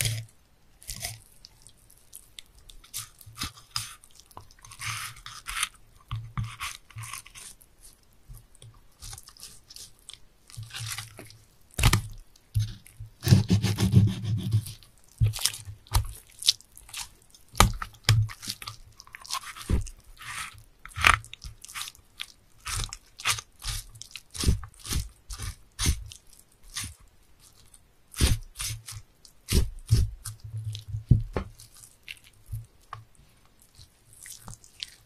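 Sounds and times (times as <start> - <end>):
knife cutting fish on board: 12.6 - 14.8, 28.2 - 30.2
knife rasping through fish: 12.6 - 15.5, 28.1 - 30.2.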